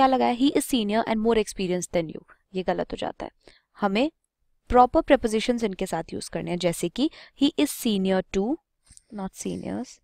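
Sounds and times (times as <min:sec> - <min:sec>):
person speaking: 0:07.5 - 0:10.0.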